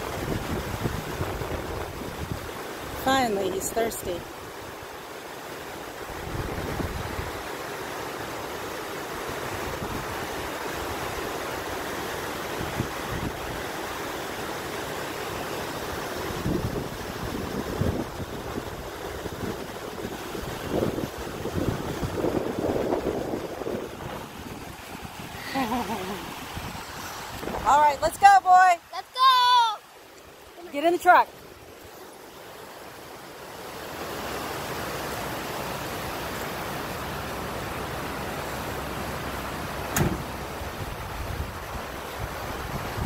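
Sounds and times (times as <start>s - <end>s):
wind buffeting microphone: 0.0s - 3.0s, 6.1s - 7.4s, 16.2s - 28.6s, 40.0s - 43.0s
waterfall splashing on rocks: 32.4s - 43.0s.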